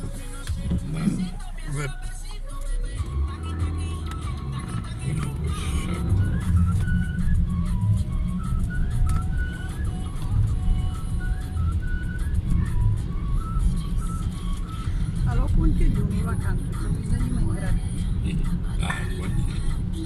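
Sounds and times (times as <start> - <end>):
car driving rumble: 0.0 - 20.0.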